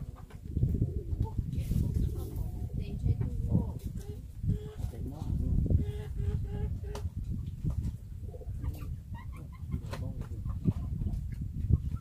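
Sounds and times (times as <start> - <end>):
fowl clucking: 5.8 - 7.1.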